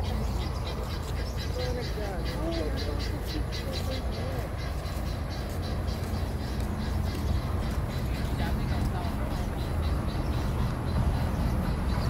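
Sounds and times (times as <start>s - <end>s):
faint voices: 0.0s - 12.0s
steady low rumble: 0.0s - 12.0s.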